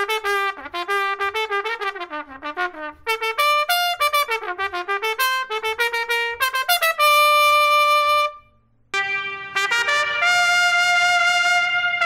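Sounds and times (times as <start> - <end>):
trumpet playing: 0.0 - 12.0.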